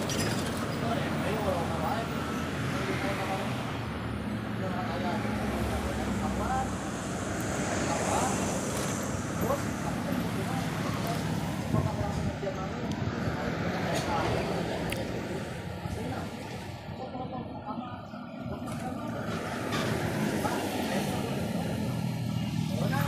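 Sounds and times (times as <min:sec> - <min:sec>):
people talking: 0:00.0 - 0:03.8, 0:04.4 - 0:23.0
traffic engine hum: 0:00.0 - 0:23.0.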